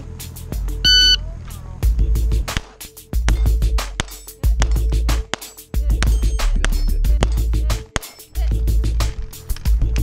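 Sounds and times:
shot timer beep: 0.9 - 1.2.

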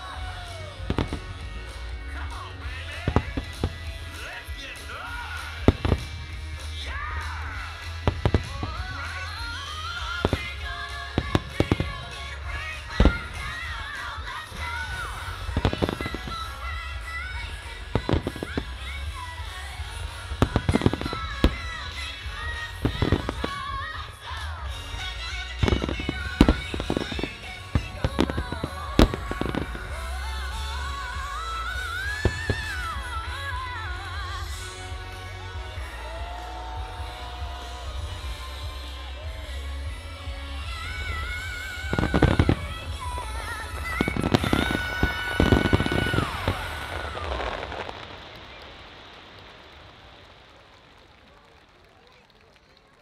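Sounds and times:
melodic music: 0.0 - 49.1
fireworks bursting: 0.0 - 53.0.

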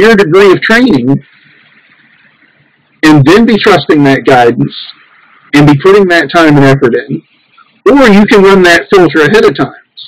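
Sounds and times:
man speaking: 0.0 - 1.4, 3.0 - 10.0
faint steady hiss: 0.0 - 10.0.

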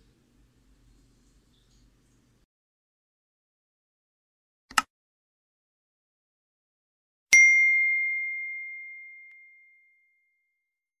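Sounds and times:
bright bell ding: 7.3 - 10.4.

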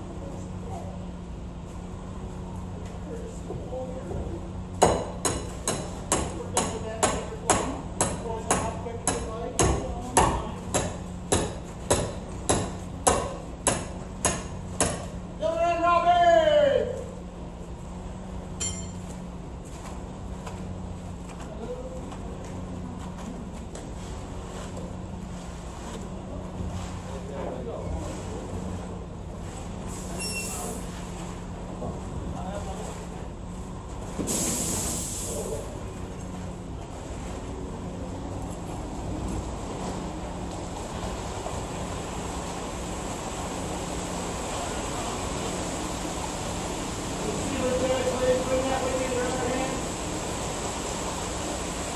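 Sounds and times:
metallic hammer strikes: 4.8 - 15.1, 18.6 - 19.0
person calling out: 15.4 - 17.0
short hiss: 34.3 - 35.5.

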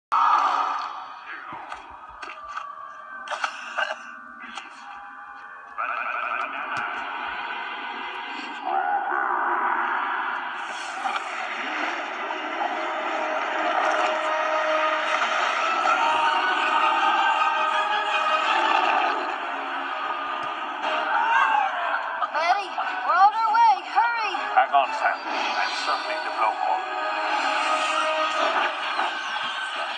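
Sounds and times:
film soundtrack through laptop speakers: 0.1 - 29.9.

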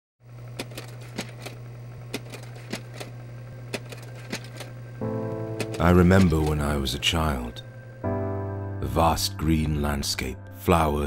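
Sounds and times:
steady low hum: 0.2 - 10.5.

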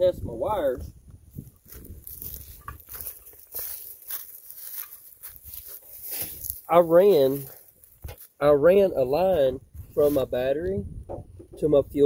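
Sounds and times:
footsteps on dry leaves: 0.9 - 10.3.

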